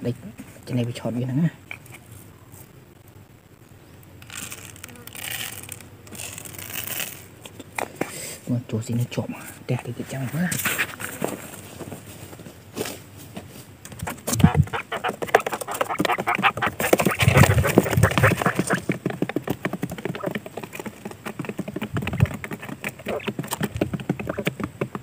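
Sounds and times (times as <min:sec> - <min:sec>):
quail calling: 0:13.9 - 0:18.9, 0:23.0 - 0:24.5.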